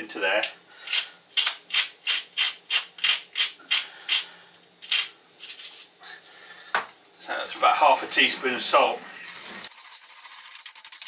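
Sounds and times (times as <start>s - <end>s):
salt mill grinding: 7.5s - 11.0s.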